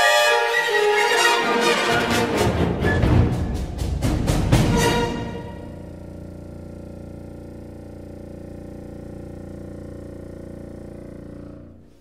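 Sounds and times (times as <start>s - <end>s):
contrabassoon low buzzy note: 3.0s - 12.0s.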